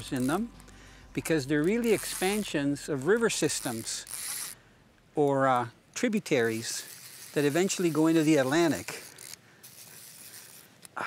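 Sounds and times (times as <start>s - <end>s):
fly reel drag clicking: 0.0s - 4.6s, 5.2s - 11.0s.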